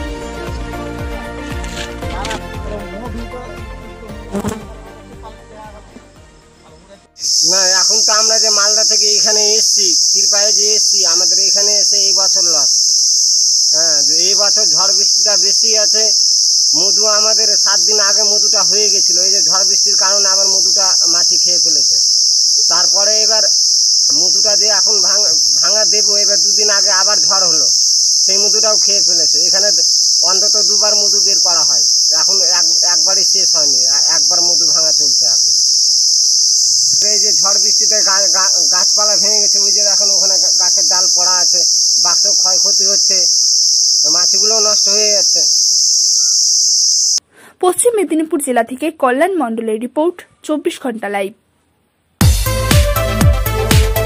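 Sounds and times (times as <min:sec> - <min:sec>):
high-pitched insect chorus: 0:00.0 - 0:03.6, 0:04.2 - 0:47.2
man speaking: 0:02.0 - 0:06.0, 0:06.7 - 0:12.8, 0:13.7 - 0:35.5, 0:36.7 - 0:43.3, 0:44.0 - 0:45.5
man talking: 0:02.0 - 0:06.0, 0:06.6 - 0:12.7, 0:13.7 - 0:16.2, 0:16.8 - 0:22.0, 0:22.6 - 0:23.5, 0:24.1 - 0:27.7, 0:28.3 - 0:35.4, 0:36.8 - 0:43.3, 0:44.0 - 0:45.5.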